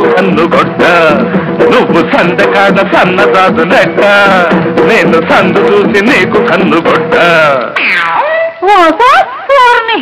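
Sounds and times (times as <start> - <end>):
film song accompaniment: 0.0 - 7.7.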